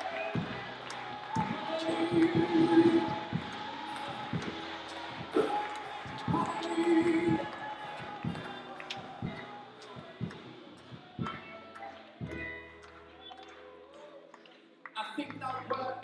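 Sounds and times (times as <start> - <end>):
voices calling out in prayer: 0.0 - 12.4.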